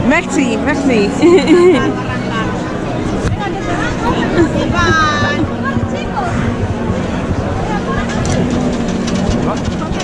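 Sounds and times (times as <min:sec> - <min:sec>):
crowd voices: 0:00.0 - 0:10.0
scattered clicks: 0:08.0 - 0:10.0.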